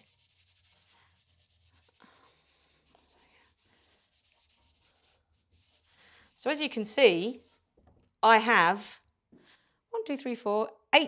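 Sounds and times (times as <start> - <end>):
paintbrush scrubbing on paper: 0.0 - 7.8.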